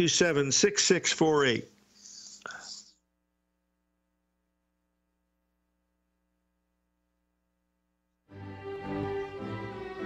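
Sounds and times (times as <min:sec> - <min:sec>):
man whispering: 0:01.7 - 0:03.0.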